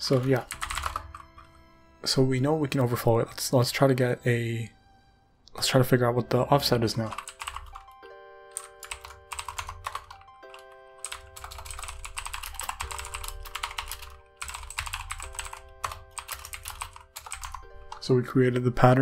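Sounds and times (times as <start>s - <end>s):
typing on computer keyboard: 0.0s - 1.5s, 7.0s - 18.8s
quiet background music chords: 0.0s - 19.0s.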